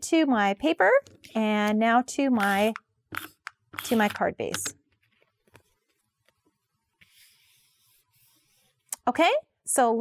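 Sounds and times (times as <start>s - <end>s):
palms rubbing over paper: 5.1s - 8.9s.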